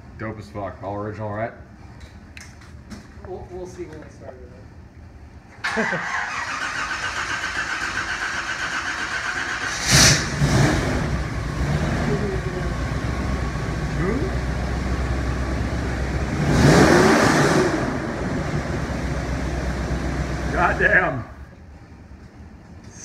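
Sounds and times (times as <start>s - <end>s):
car starter cranking: 5.6s - 10.4s
car engine idling and revving: 5.8s - 21.1s.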